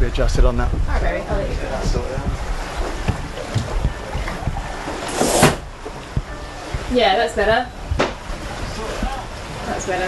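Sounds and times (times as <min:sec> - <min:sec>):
water rushing: 0:00.0 - 0:10.0
wind: 0:00.0 - 0:10.0.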